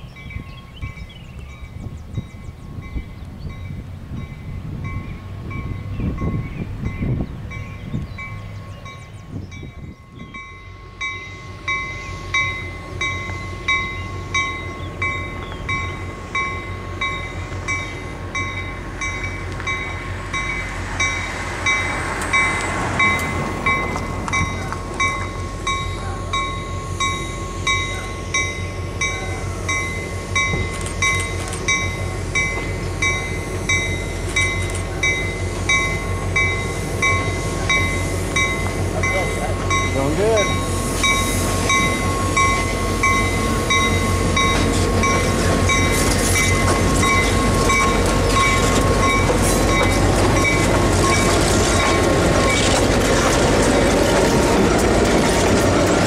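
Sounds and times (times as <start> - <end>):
crossing bell ringing: 0.0 - 56.0
diesel locomotive engine rumble: 0.0 - 56.0
train wheel noise: 0.0 - 56.0.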